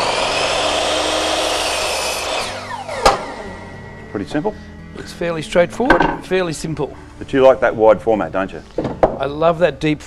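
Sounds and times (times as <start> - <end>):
mitre saw cutting wood: 0.0 - 3.7.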